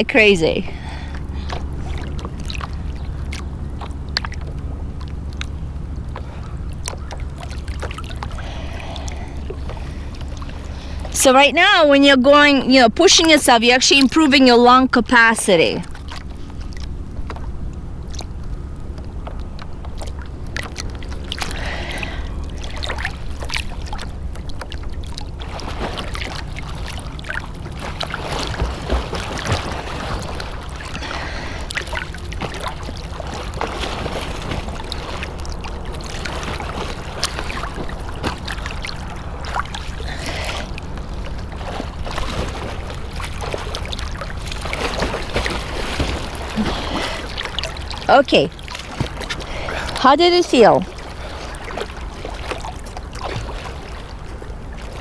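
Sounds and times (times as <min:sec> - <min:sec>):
water lapping and sloshing: 0:00.0 - 0:55.0
small water splashes: 0:00.2 - 0:12.5, 0:15.4 - 0:55.0.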